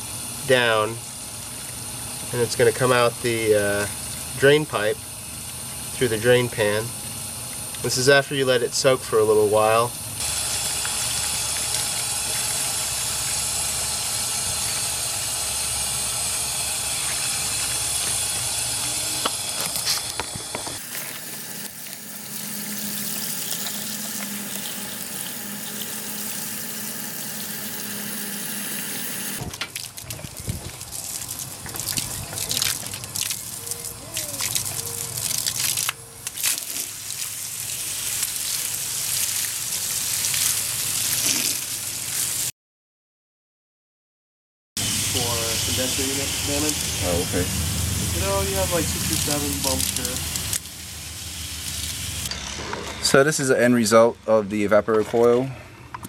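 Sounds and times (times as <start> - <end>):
hose water splashing on metal coil: 10.2 - 20.2, 20.8 - 33.6, 34.4 - 42.5, 44.8 - 47.4, 48.0 - 52.2.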